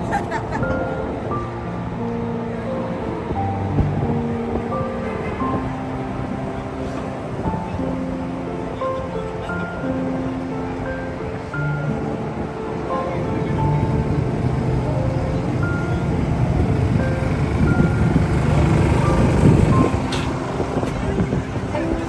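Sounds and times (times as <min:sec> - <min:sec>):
crowd voices: 0:00.0 - 0:22.0
music playing: 0:00.0 - 0:22.0
traffic noise: 0:00.0 - 0:22.0.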